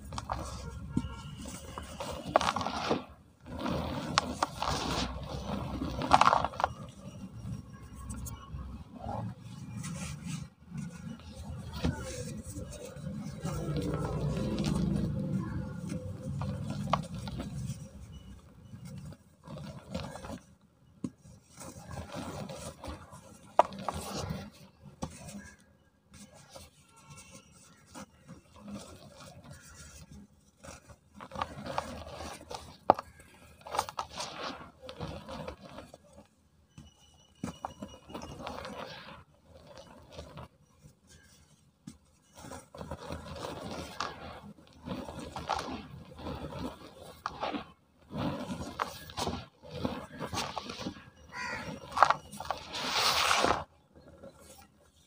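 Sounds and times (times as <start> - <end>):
powder rubbing and trickling: 0.0 - 55.0
cement block crunching: 10.8 - 25.6, 27.0 - 55.0.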